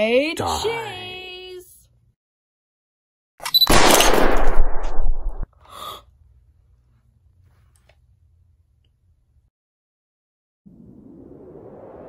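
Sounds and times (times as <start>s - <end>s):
loud gunfire burst: 3.7s - 5.1s.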